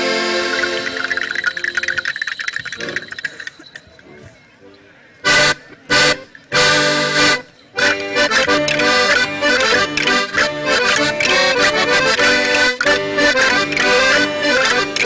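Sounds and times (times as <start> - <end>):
loud accordion chords: 0.0 - 2.1, 5.2 - 15.0
accordion folk dance music: 0.0 - 4.4, 5.2 - 15.0.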